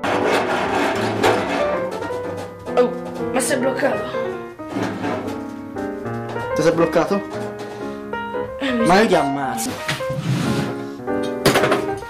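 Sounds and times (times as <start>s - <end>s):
metal rods scraping metal panel: 0.0s - 7.9s
background music: 0.0s - 12.0s.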